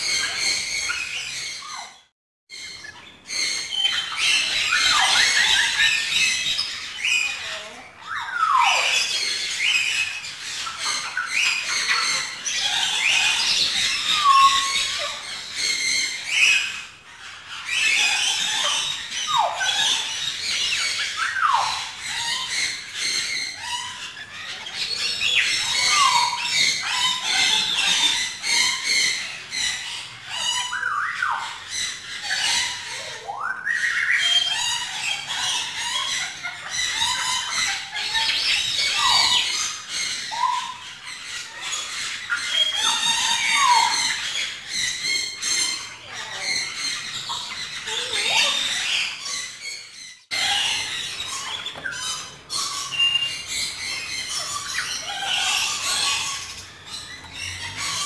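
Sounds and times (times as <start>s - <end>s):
birds chirping: 0.0s - 58.0s.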